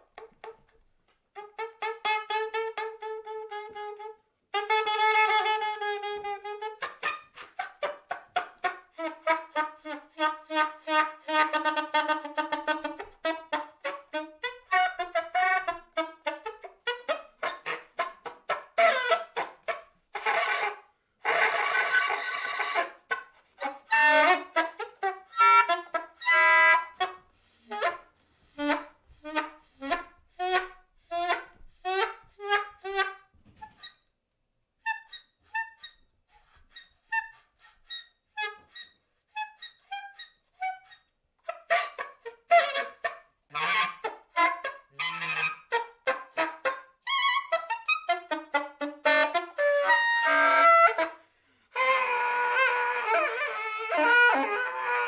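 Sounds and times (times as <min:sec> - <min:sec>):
soprano saxophone playing: 0:01.3 - 0:07.4, 0:08.6 - 0:18.0, 0:20.2 - 0:33.7, 0:42.2 - 0:55.0.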